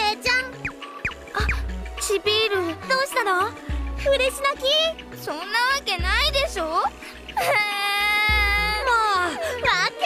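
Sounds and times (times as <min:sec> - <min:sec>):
woman wailing high-pitched cry: 0:07.4 - 0:10.0.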